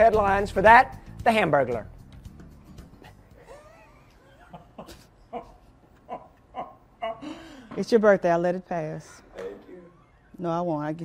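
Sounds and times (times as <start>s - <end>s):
woman laughing: 3.4s - 7.6s.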